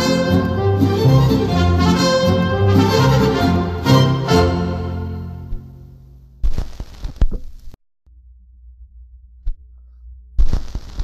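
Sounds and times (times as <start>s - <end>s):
vinyl record clicks and crackle: 6.3s - 7.8s, 10.4s - 11.0s
faint low hum: 7.4s - 11.0s.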